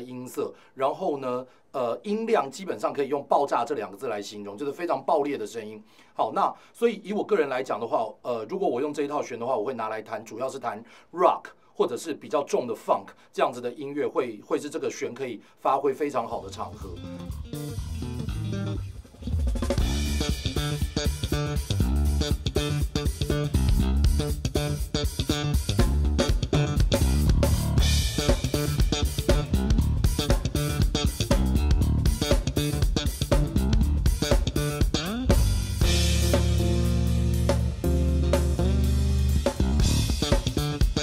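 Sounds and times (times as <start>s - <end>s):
electric bass: 16.5s - 41.0s
drum kit: 16.6s - 41.0s.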